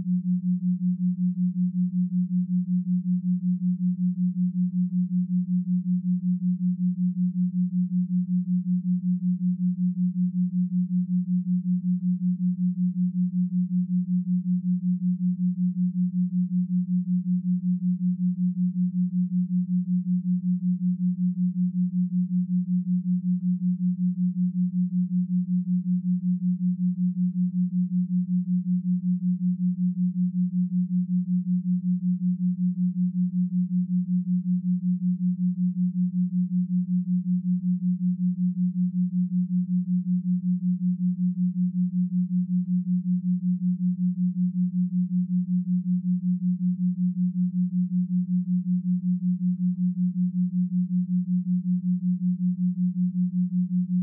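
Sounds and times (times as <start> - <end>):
pulsing low hum tone: 0.0 - 54.0.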